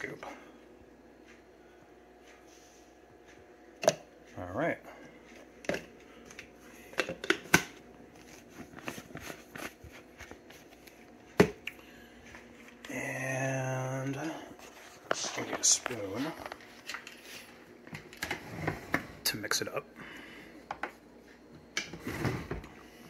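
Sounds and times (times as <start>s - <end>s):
steady pitched hum: 0.0s - 23.0s.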